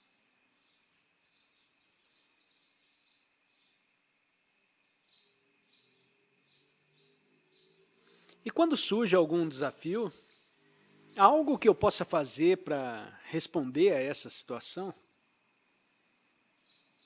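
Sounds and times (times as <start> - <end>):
faint high chirps: 0.0 - 11.7.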